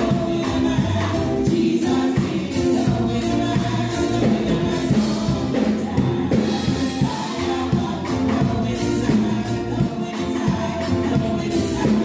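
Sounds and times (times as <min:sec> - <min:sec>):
instrumental accompaniment with beat: 0:00.0 - 0:12.0
women singing gospel in harmony: 0:00.0 - 0:12.0.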